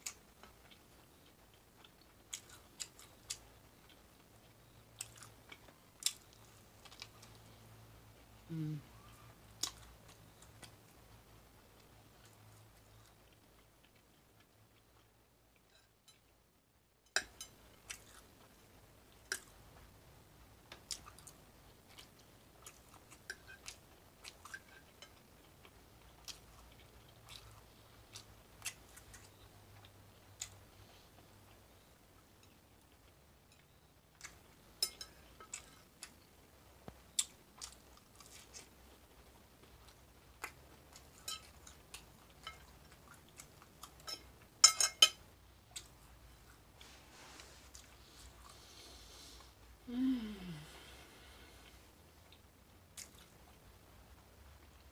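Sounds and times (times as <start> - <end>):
close-up chewing: 0.0 - 7.6, 20.7 - 49.6.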